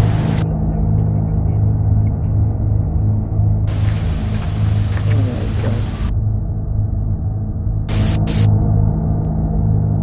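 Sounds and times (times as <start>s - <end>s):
hissy outdoor field noise: 0.0s - 0.4s, 3.7s - 6.1s, 7.9s - 8.5s
low droning hum: 0.0s - 10.0s.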